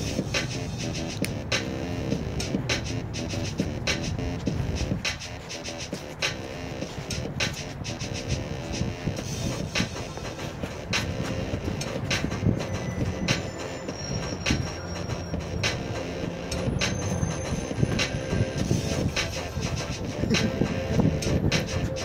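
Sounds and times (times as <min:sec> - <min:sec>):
bus rumbling past: 0:00.0 - 0:22.0
dance music beat from speaker: 0:00.0 - 0:22.0
thin high squeal: 0:16.5 - 0:18.4.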